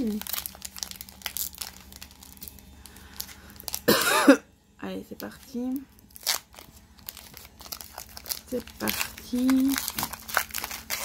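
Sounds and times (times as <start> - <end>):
foil wrapper crinkling and tearing: 0.0 - 4.0, 5.2 - 11.0.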